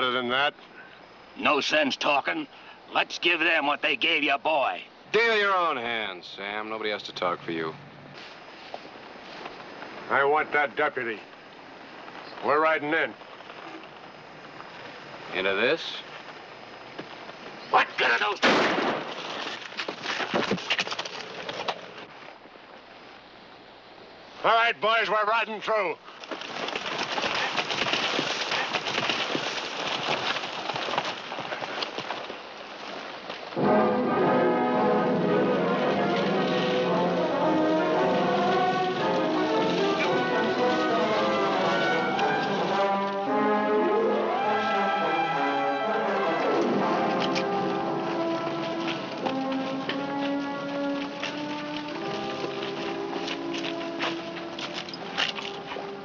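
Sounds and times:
dramatic orchestral music with brass: 33.6s - 54.6s
dense noisy clatter: 35.7s - 43.1s.

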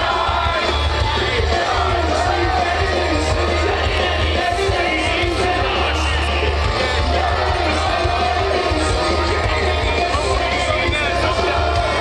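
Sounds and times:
heavy bass: 0.0s - 12.0s
live band music over loudspeakers: 0.0s - 12.0s
person singing: 0.0s - 12.0s.

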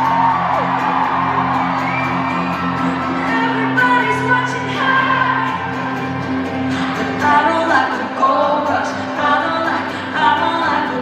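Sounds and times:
acoustic guitar: 0.0s - 11.0s
woman singing: 3.2s - 5.9s, 6.9s - 11.0s.

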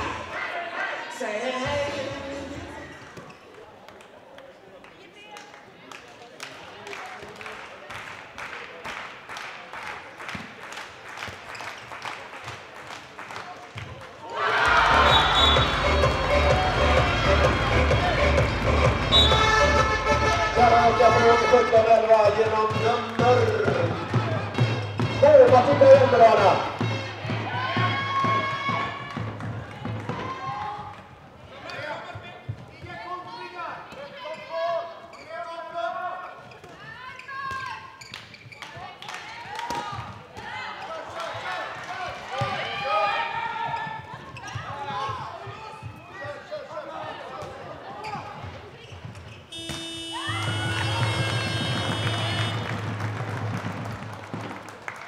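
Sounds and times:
music with singing: 1.1s - 3.0s, 14.7s - 21.5s
electronic scoreboard horn: 19.0s - 21.9s, 49.5s - 52.9s
ball bouncing on floor: 48.4s - 52.2s.

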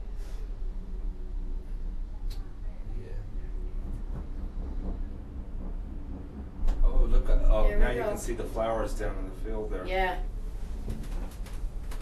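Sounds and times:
gondola cabin rumble: 0.0s - 12.0s.

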